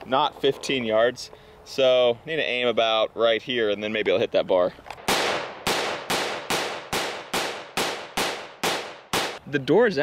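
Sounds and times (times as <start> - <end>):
rifle gunshots: 5.0 - 9.4.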